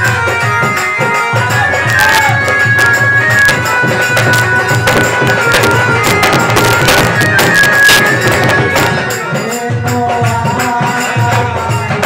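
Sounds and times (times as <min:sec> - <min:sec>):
sustained folk melody: 0:00.0 - 0:10.8
drum strokes: 0:00.0 - 0:12.0.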